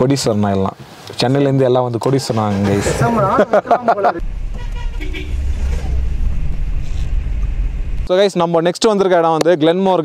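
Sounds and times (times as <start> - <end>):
road noise: 0.0 - 10.0
car engine low rumble: 4.2 - 8.1.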